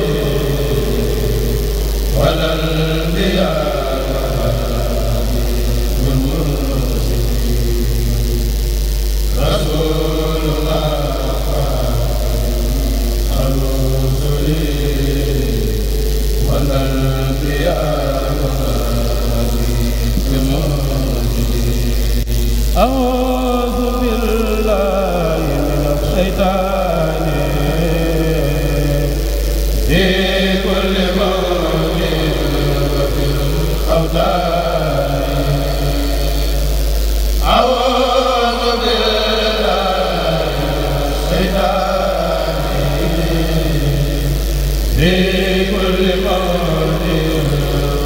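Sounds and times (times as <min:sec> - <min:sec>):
low hum: 0:00.0 - 0:48.0
solo voice singing: 0:00.0 - 0:48.0
unaccompanied religious chanting: 0:00.0 - 0:48.0.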